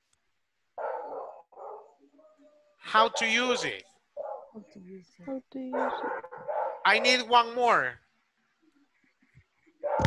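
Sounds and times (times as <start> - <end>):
dog barking: 0.8 - 4.6, 5.7 - 7.4, 9.8 - 10.0.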